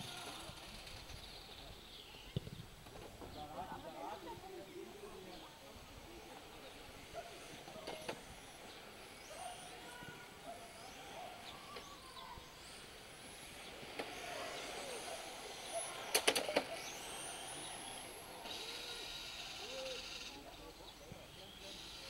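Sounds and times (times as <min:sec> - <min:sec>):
rc car motor whine: 0:00.0 - 0:02.3, 0:05.9 - 0:22.0.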